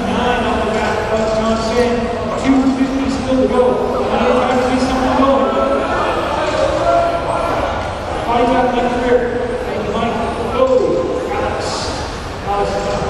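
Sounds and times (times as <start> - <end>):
man announcing over public address: 0.0 - 13.0.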